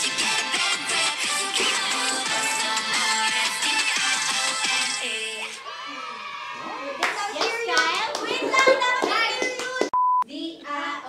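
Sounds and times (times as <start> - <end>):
sharp hand claps: 7.0 - 10.0.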